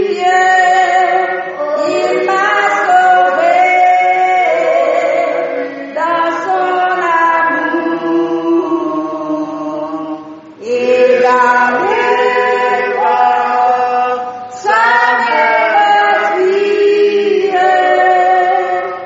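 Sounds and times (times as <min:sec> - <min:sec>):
slow hymn singing: 0:00.0 - 0:19.0.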